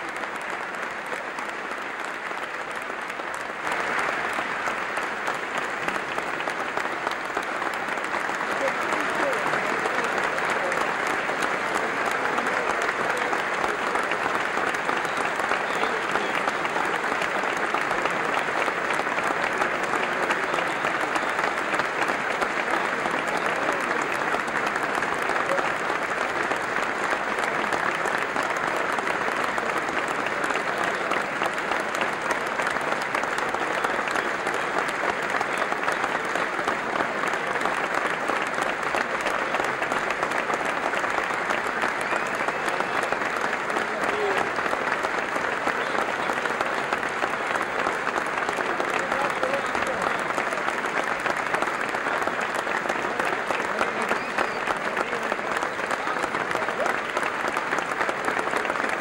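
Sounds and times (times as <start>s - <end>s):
audience applause: 0.0s - 59.0s.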